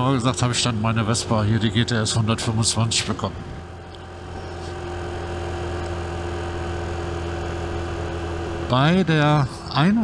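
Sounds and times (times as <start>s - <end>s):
scooter engine running: 0.1s - 10.0s.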